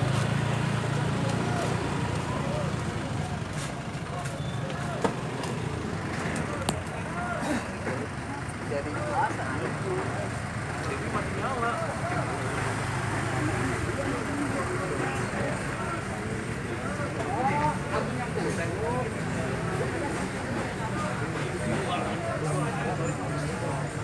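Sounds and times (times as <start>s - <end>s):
indistinct chatter: 0.0s - 24.0s
vehicle engine humming: 0.0s - 24.0s.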